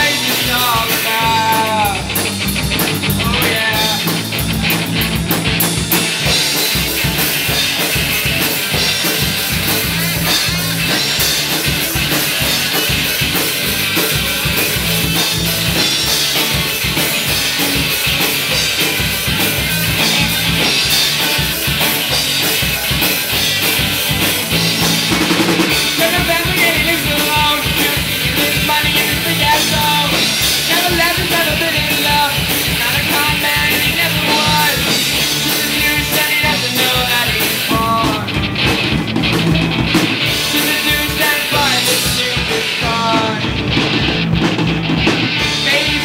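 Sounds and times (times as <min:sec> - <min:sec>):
distorted electric guitars: 0:00.0 - 0:46.0
drum kit beat: 0:00.0 - 0:46.0.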